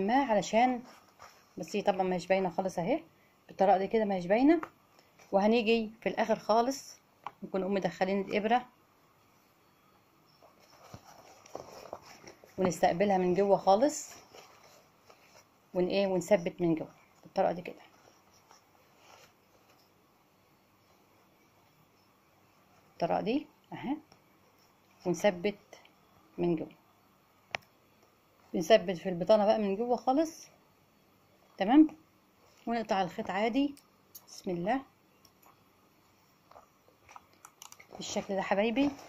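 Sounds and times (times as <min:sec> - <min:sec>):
faint rustles: 0:10.3 - 0:20.0, 0:36.0 - 0:39.0
leather jacket rustling: 0:37.9 - 0:39.0.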